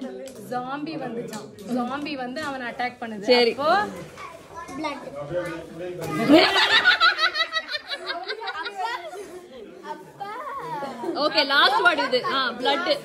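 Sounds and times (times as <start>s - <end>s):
adult and child voices chattering: 0.0s - 13.0s.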